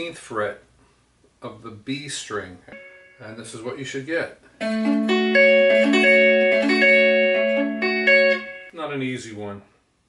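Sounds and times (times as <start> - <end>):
clean electric guitar chord picked: 2.7 - 3.3, 4.6 - 8.7.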